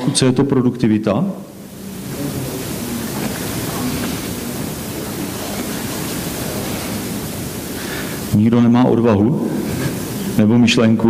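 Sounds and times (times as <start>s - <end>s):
recording hiss: 0.0s - 11.0s
faint low murmur: 1.0s - 11.0s.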